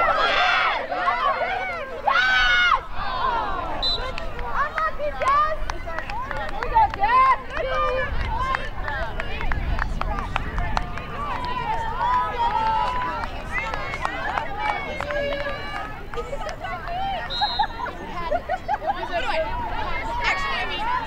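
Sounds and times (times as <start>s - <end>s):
people shouting and calling out: 0.0s - 21.0s.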